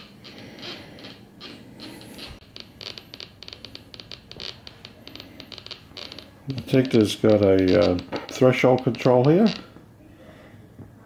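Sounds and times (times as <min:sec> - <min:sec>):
speaker crackling with fast clicks: 0:02.1 - 0:09.7.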